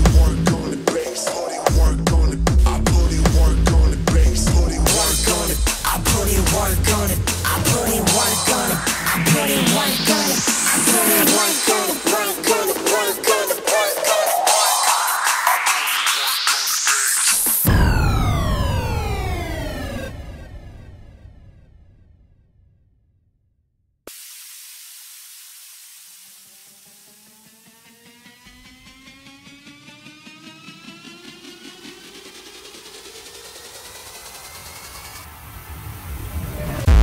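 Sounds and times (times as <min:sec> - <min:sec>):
deep bass rumble: 0:01.7 - 0:10.5
fast electronic pulse: 0:04.9 - 0:21.0
rising synth tone: 0:05.1 - 0:21.7, 0:26.4 - 0:37.0
synth tone gliding down: 0:06.2 - 0:11.8, 0:17.6 - 0:21.3.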